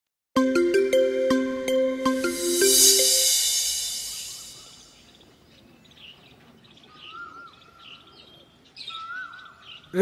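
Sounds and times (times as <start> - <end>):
whistled call dropping in pitch: 1.7 - 5.0.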